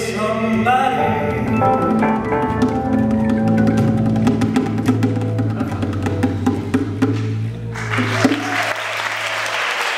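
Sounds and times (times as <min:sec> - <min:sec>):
audience applause: 0:07.7 - 0:09.9.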